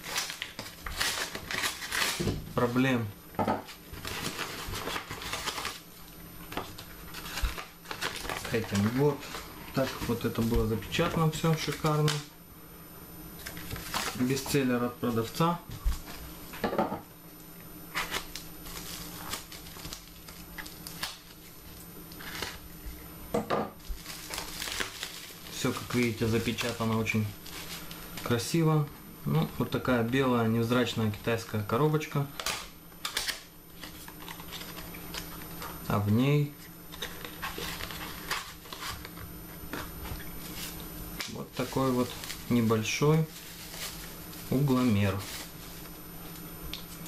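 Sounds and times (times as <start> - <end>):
bubble wrap crinkling: 0.0 - 2.3, 3.7 - 12.2, 13.4 - 14.5, 17.9 - 22.8, 23.8 - 28.4, 32.4 - 35.7, 36.9 - 47.0
paper mailer rustling: 4.0 - 5.8, 6.6 - 12.2, 24.0 - 28.4, 41.3 - 45.9.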